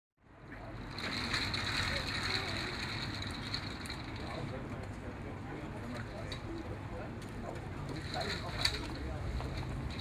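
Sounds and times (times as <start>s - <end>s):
low traffic rumble: 0.2s - 10.0s
voices of passers-by: 0.2s - 10.0s.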